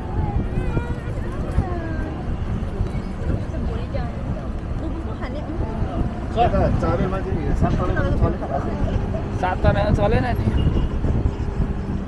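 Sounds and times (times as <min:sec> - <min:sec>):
faint voices: 0:00.0 - 0:12.0
vehicle engine and tyre rumble: 0:00.0 - 0:12.0.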